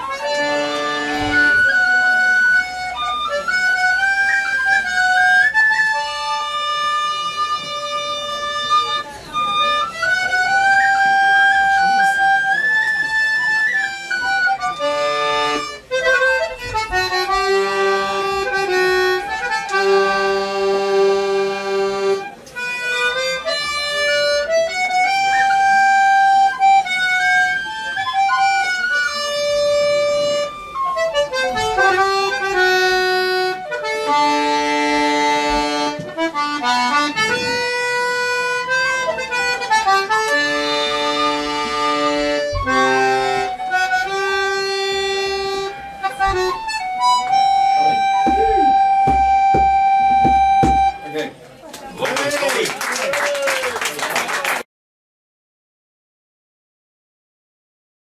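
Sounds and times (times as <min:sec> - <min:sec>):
tin whistle melody: 0:00.0 - 0:06.6, 0:09.4 - 0:16.7, 0:24.2 - 0:32.0, 0:42.4 - 0:51.2
accordion reed notes: 0:00.0 - 0:52.7.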